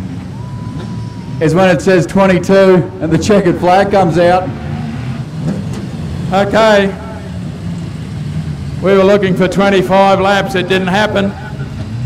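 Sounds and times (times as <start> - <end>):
race car engine running low: 0.0 - 12.0
man speaking: 1.4 - 4.5, 6.3 - 7.3, 8.8 - 11.7.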